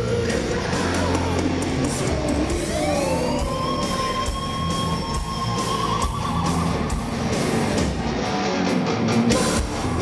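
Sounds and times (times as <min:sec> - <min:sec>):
heavy metal band playing: 0:00.0 - 0:10.0.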